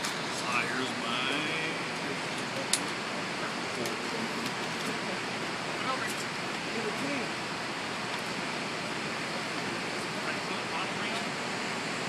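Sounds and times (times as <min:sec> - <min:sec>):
steady rushing noise: 0:00.0 - 0:12.0
faint voices: 0:00.3 - 0:07.8.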